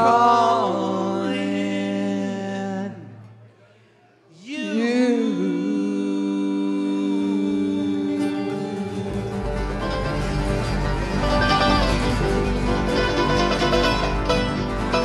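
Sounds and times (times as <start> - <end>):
acoustic guitars strumming: 7.6 - 15.0
mandolin: 8.0 - 15.0
upright bass: 8.7 - 15.0.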